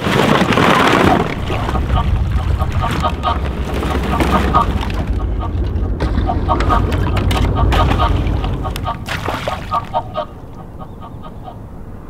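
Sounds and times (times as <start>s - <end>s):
low rumble of water or wind: 0.0s - 12.0s
ducks quacking: 0.6s - 11.8s.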